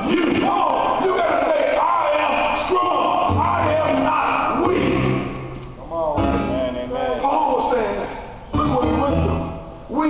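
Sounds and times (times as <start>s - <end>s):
congregation shouting: 0.0s - 5.6s
church keyboard music: 0.0s - 10.0s.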